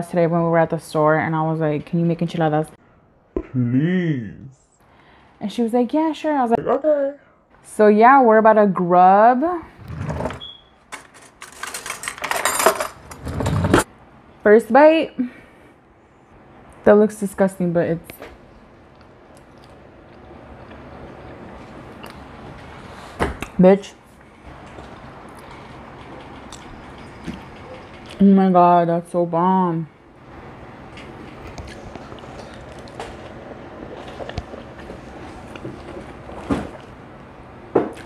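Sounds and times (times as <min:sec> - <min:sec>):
person chewing: 0:18.9 - 0:22.3, 0:31.5 - 0:35.9.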